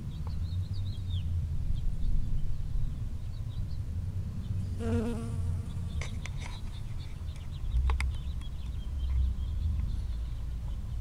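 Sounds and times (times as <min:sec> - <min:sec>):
honeybee buzzing in flight: 0:04.8 - 0:06.1.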